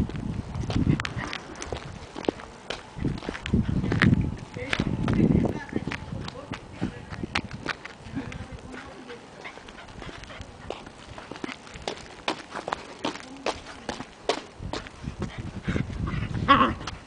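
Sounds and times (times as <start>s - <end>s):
footsteps on asphalt: 0.0s - 17.0s
dog claws tapping on asphalt: 0.1s - 15.4s.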